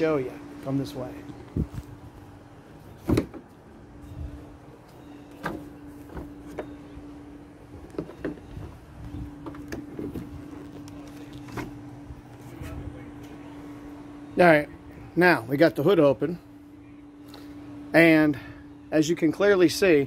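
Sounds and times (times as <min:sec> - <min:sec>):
steady low hum: 0:00.0 - 0:20.0
car hood clicks and knocks: 0:03.0 - 0:03.5.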